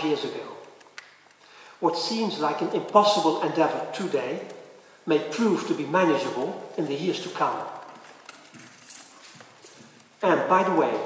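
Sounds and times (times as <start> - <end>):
room hiss: 0.0 - 11.0
faint irregular clicks: 0.6 - 1.5, 4.4 - 4.8.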